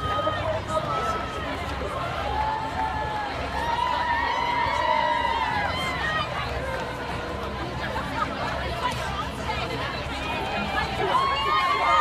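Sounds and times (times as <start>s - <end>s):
crowd voices chattering and calling: 0.0s - 12.0s.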